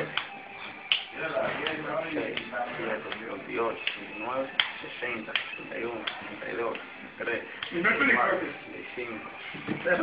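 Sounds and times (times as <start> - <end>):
open-hand slaps on ear: 0.1 - 4.0, 4.6 - 6.2.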